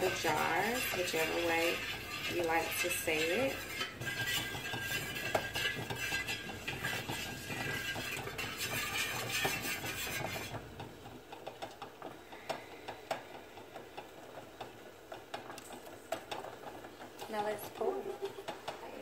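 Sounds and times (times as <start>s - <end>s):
chopstick scraping metal pitcher: 0.0s - 10.6s.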